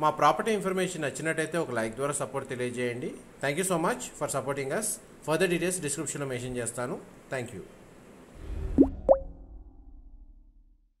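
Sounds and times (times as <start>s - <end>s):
low rumble: 8.4s - 11.0s
upward-gliding pop: 8.6s - 9.7s.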